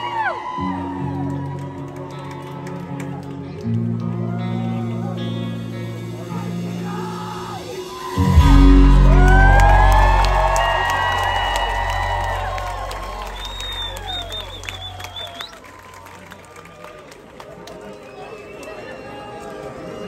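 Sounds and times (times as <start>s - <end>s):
crowd cheering and screaming: 0.0s - 3.0s, 6.4s - 16.9s
rock band final hit: 6.8s - 14.0s
high wavering whistle: 7.9s - 15.6s.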